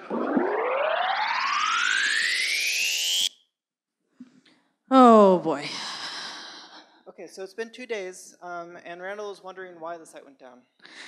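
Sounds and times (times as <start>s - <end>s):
rising whoosh sound effect: 0.0s - 3.3s.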